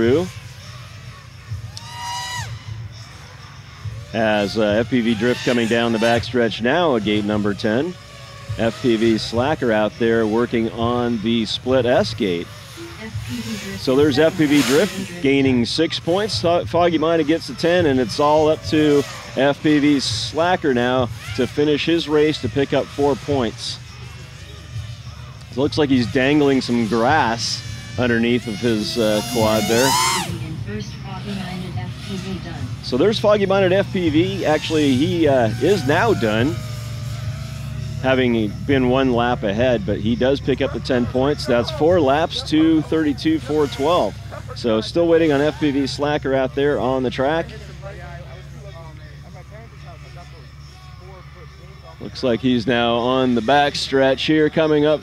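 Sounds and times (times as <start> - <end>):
faint indistinct voices: 0.0 - 55.0
low background hum: 0.0 - 55.0
voice trailing off: 25.6 - 47.8.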